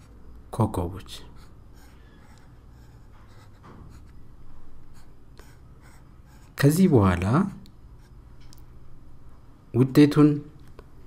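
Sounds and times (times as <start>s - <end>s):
low steady hum: 0.0s - 11.0s
stylus scratching on drawing tablet: 1.2s - 4.2s, 4.9s - 6.8s.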